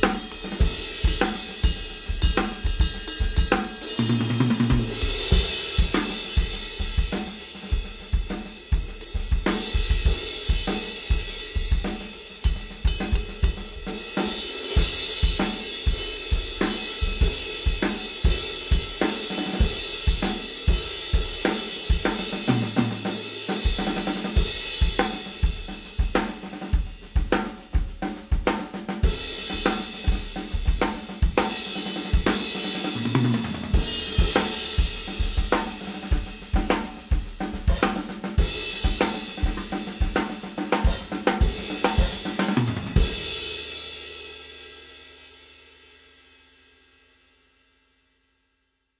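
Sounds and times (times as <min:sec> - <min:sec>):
drum kit groove: 0:00.0 - 0:45.4.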